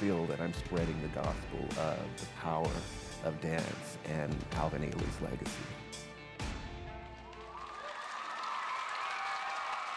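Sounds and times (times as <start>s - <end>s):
audience applauding: 7.0s - 9.9s
audience cheering: 7.0s - 9.9s.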